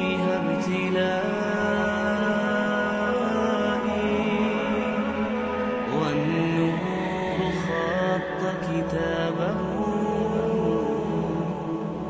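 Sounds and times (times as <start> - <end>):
slow chanted melody: 0.0 - 12.0.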